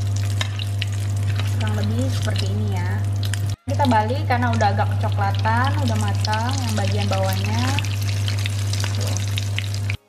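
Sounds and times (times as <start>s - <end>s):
constant low hum: 0.0s - 10.0s
hot oil sizzling and crackling: 0.0s - 10.0s.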